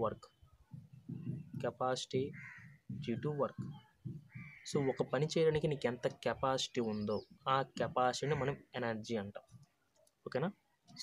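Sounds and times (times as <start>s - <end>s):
man speaking: 0.0s - 0.2s, 1.6s - 2.4s, 3.0s - 3.7s, 4.7s - 9.5s
marker tapping on whiteboard: 0.7s - 1.8s.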